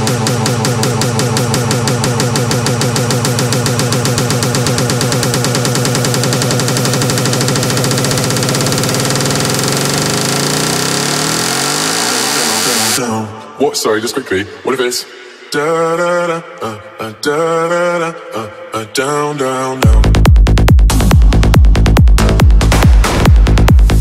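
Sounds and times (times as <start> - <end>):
pulsing synth pattern: 0.0 - 13.0.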